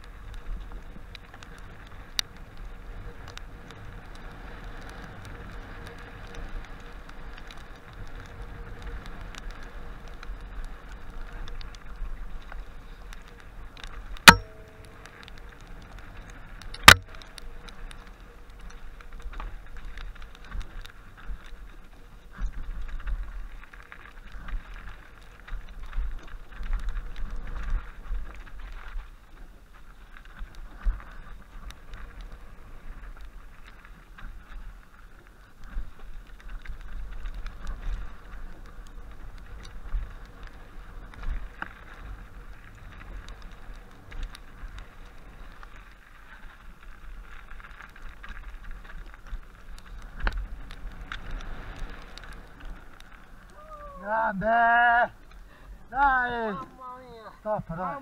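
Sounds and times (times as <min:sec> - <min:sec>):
bike rattling on bumps: 0:00.0 - 0:54.0
bike tyre noise: 0:00.0 - 0:58.0
wind rumbling on microphone: 0:00.0 - 0:58.0.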